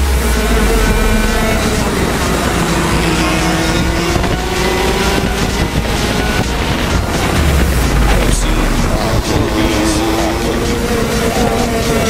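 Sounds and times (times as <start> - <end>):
go-kart engines racing: 0.0 - 12.0.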